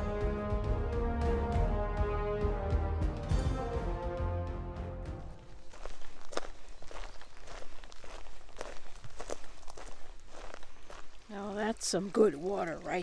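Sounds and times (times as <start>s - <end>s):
footsteps on dirt trail: 5.2s - 13.0s.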